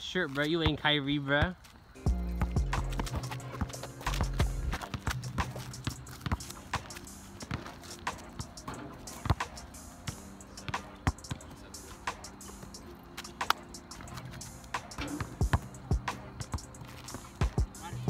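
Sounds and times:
basketball dribbling on asphalt: 0.5 - 1.8, 2.4 - 11.5, 12.2 - 18.0
background music with low notes: 2.0 - 18.0.

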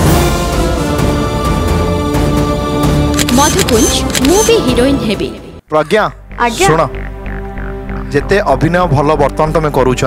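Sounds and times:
television theme music: 0.0 - 10.0.

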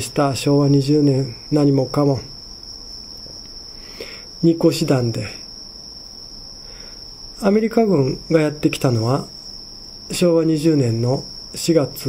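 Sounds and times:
crickets trilling: 0.0 - 12.0.

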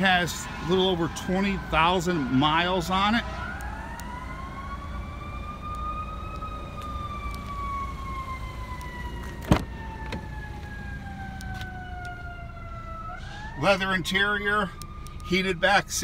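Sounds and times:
siren wailing: 0.0 - 16.0
car door latch click: 9.4 - 10.3.

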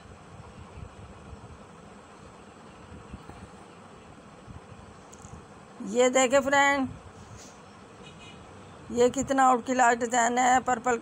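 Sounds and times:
faint background noise: 0.0 - 11.0
person narrating: 5.8 - 6.9, 8.9 - 11.0.

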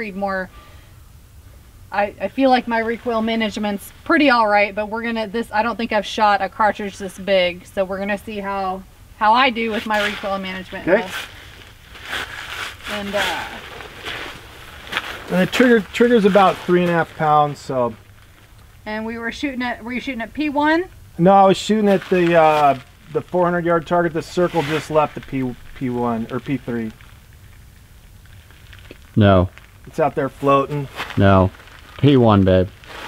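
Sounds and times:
faint hiss: 0.0 - 33.0
steady low rumble: 0.0 - 33.0
clothing rustling: 9.6 - 18.8, 21.6 - 29.0, 30.7 - 32.1.

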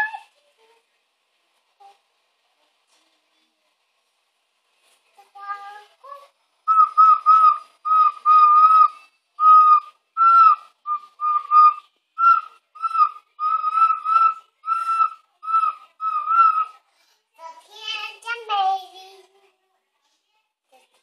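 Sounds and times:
ocarina toots: 6.7 - 16.8.

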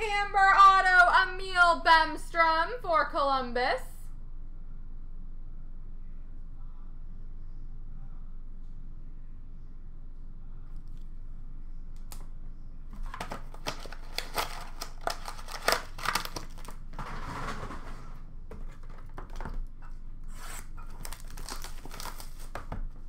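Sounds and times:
packaging crinkling and clicking: 13.0 - 17.0, 20.6 - 22.8
packaging rustling and tearing: 13.0 - 19.6, 20.3 - 22.8.

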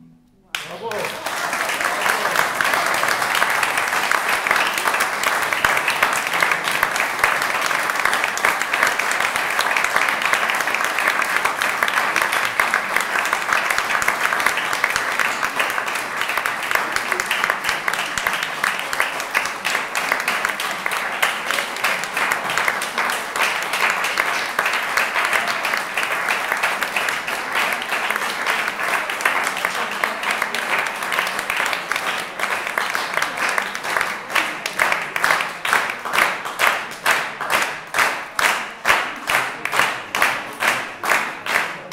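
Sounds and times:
audience applauding: 0.5 - 41.9.

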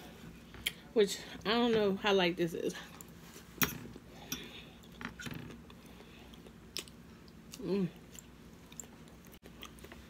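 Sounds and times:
person chewing lettuce: 5.6 - 10.0.

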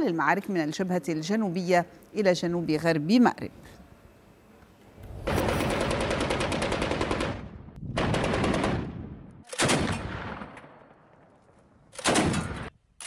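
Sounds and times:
machine-gun fire: 5.1 - 10.5.

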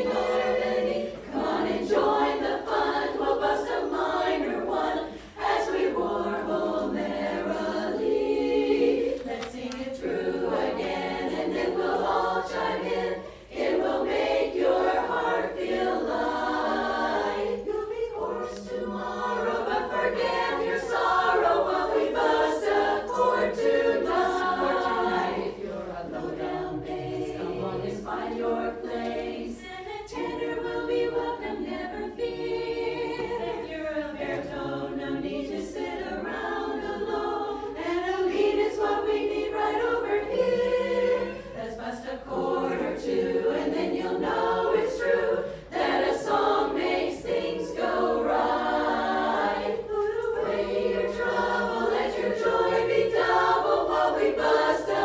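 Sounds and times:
women's chorus singing a cappella: 0.0 - 55.0.

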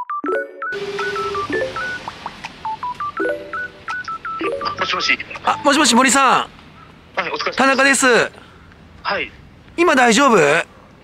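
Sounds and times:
phone keypad beeps: 0.0 - 5.8
background hiss: 0.8 - 11.0.

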